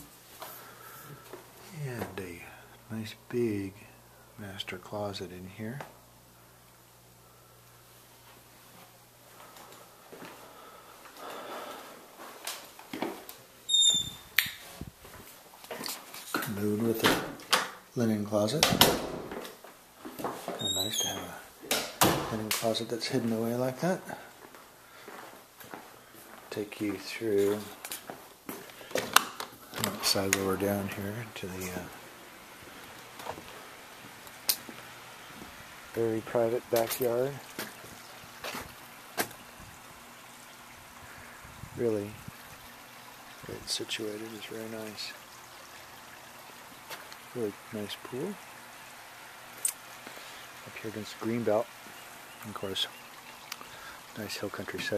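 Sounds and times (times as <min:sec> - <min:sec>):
faint background hiss: 0:00.0 - 0:54.9
door squeak: 0:13.7 - 0:14.4, 0:20.6 - 0:21.4.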